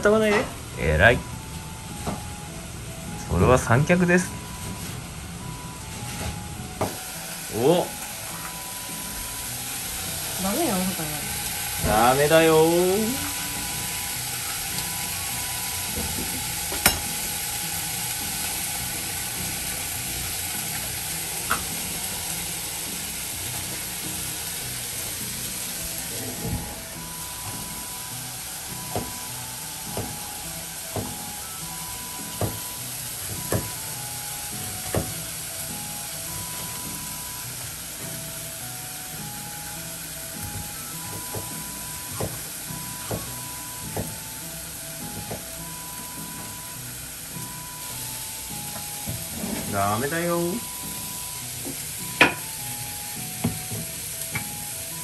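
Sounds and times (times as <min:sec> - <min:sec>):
food sizzling in a pan: 0:00.0 - 0:55.0
light background melody: 0:00.0 - 0:55.0.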